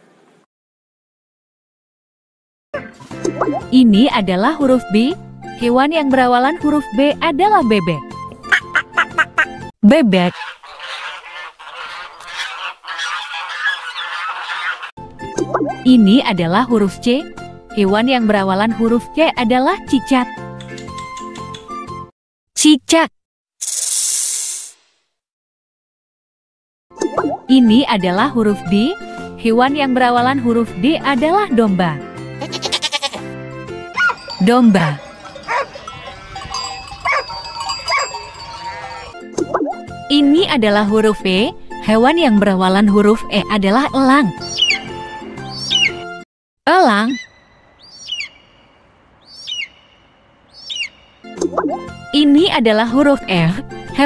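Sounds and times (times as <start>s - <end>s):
eagle crying: 10.3s - 14.9s, 32.4s - 33.3s, 35.0s - 39.2s.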